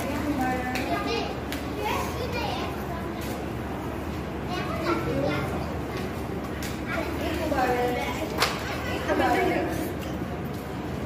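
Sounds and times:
children talking: 0.0 - 10.6.

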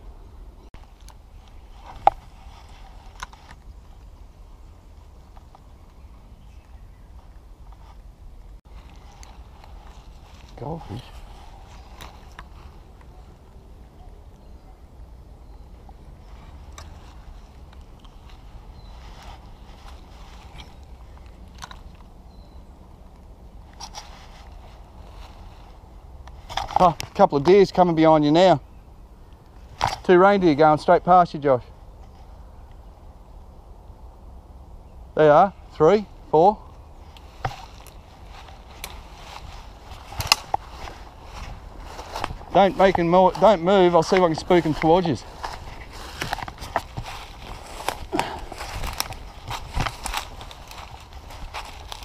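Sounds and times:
soft rustling: 0.8 - 6.0, 7.1 - 13.6, 16.2 - 22.1, 23.6 - 27.2, 37.0 - 52.0
footsteps through undergrowth: 0.8 - 14.5, 15.5 - 22.7, 23.5 - 28.1, 36.4 - 52.0.

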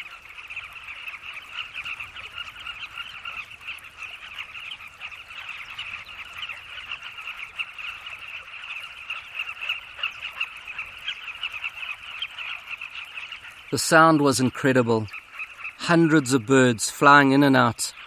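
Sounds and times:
chorus of bird calls: 0.0 - 18.0.

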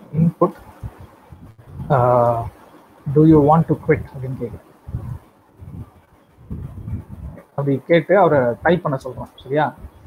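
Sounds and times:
man speaking over video call: 0.0 - 0.7, 1.7 - 5.2, 7.2 - 9.9.

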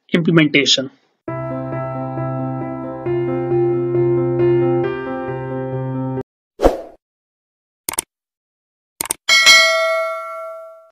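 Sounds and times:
piano music: 1.3 - 6.2
quick clicks: 7.9 - 8.1, 9.0 - 9.2
bell ding ringing: 9.3 - 10.9.

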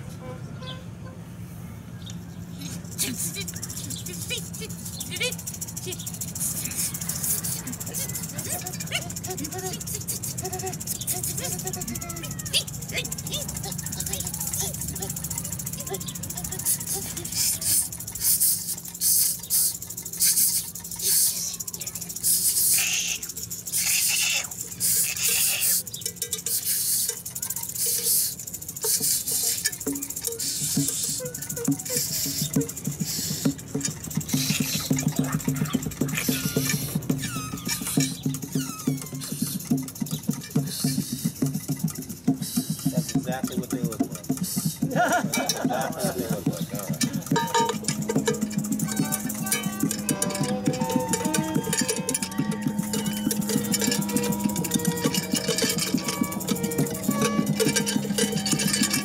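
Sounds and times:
clattering percussion: 2.6 - 59.0
held tones: 2.6 - 59.0
wavering sliding pitches: 27.8 - 40.3, 45.1 - 59.0.

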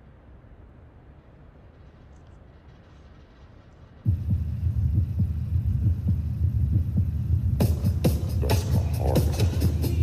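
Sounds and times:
backing music: 4.1 - 10.0
deep throbbing bass pulse: 4.1 - 10.0.

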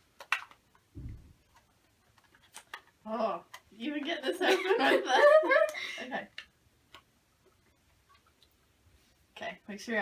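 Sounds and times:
short low thump: 1.0 - 1.4.

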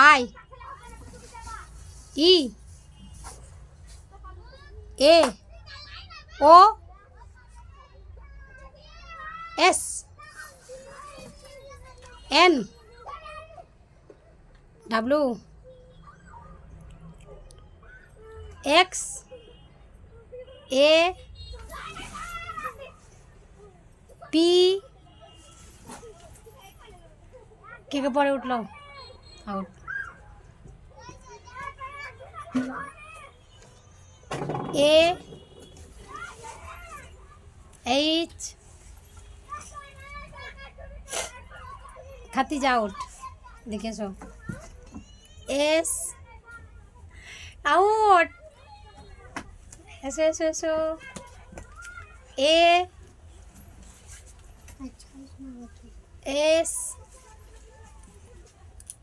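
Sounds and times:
children chattering: 21.3 - 59.0.

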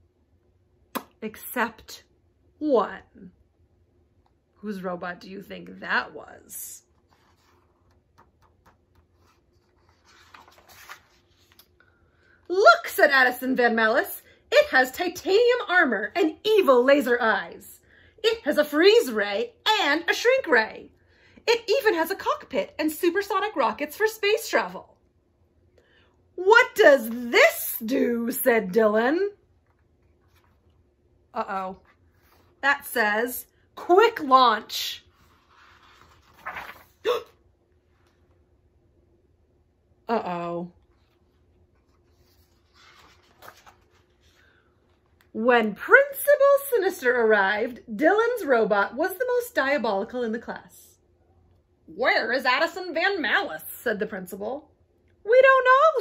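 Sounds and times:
faint steady hum: 0.0 - 56.0
book page turning: 6.9 - 11.8, 29.6 - 30.8, 35.0 - 37.0, 40.8 - 45.3.

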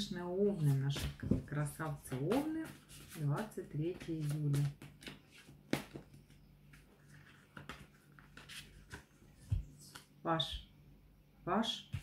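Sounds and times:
faint steady hum: 1.6 - 12.0.

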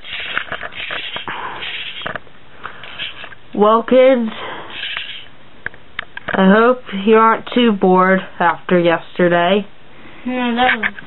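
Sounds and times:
plastic toys clicking and knocking: 0.0 - 2.2, 4.7 - 5.3.

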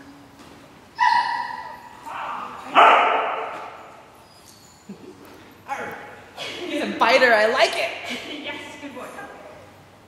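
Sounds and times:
dog barking and yelping: 1.0 - 3.6.

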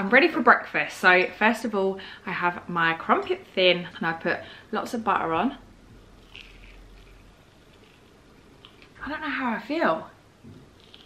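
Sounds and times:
soft chewing: 6.0 - 9.0, 10.5 - 11.0.

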